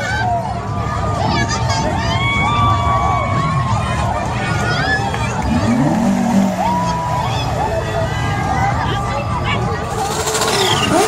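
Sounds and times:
crowd chattering and calling: 0:00.0 - 0:11.0
car engine revving: 0:05.2 - 0:08.0, 0:09.8 - 0:11.0.

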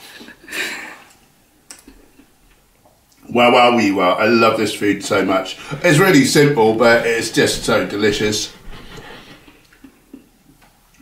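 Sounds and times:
person chewing: 0:01.7 - 0:03.2, 0:08.5 - 0:10.4.

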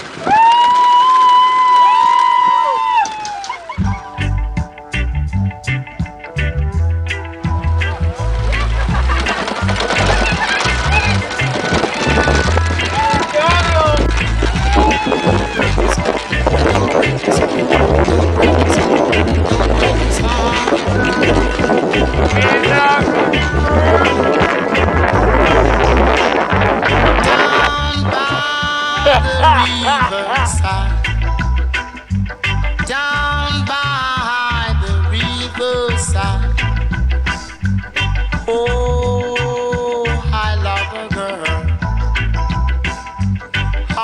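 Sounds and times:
person whooping cheer: 0:00.2 - 0:03.9, 0:12.9 - 0:13.6, 0:14.5 - 0:15.8, 0:29.0 - 0:30.6
second voice whooping: 0:00.2 - 0:04.1, 0:14.5 - 0:15.8, 0:29.0 - 0:30.6
upbeat song with bass and drums: 0:02.3 - 0:44.0.

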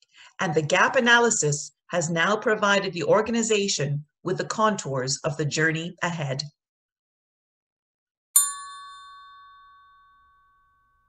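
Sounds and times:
bell-like chime: 0:08.4 - 0:11.0.

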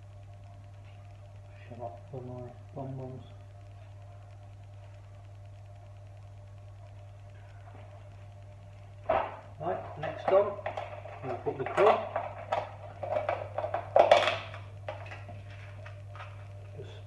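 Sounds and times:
kitchen items clattering: 0:09.1 - 0:15.7.

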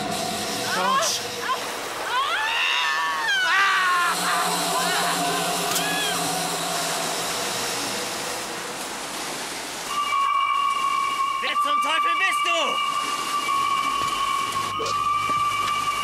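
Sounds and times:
low drone: 0:00.0 - 0:11.4
steady rushing hiss: 0:00.0 - 0:16.0
wavering scream: 0:00.9 - 0:06.4
steady high tone: 0:03.4 - 0:16.0.

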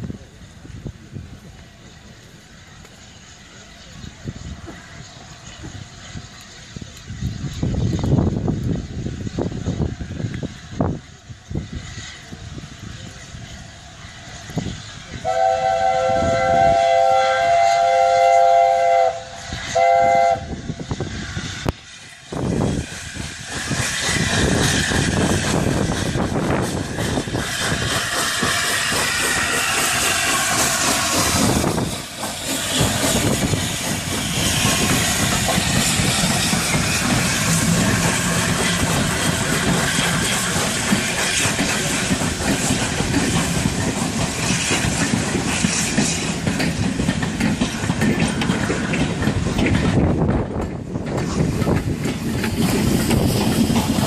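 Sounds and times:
train rushing and clattering past: 0:00.0 - 0:54.0
steam locomotive chime whistle: 0:15.2 - 0:20.6.

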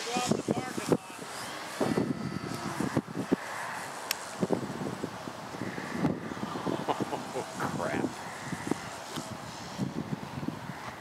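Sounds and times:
distant model plane motor drone: 0:00.0 - 0:11.0
wind buffeting microphone: 0:00.0 - 0:11.0.

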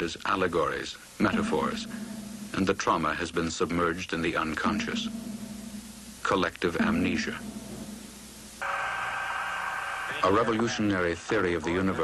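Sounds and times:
electronic drone with held tones: 0:01.2 - 0:02.8, 0:04.6 - 0:08.8.

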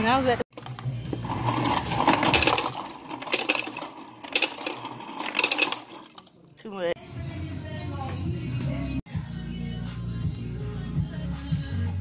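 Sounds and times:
ice cubes clattering into plastic cup: 0:01.2 - 0:06.3.

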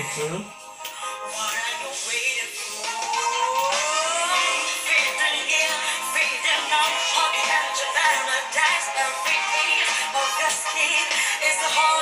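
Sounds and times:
female vocal pop ballad: 0:00.0 - 0:12.0.

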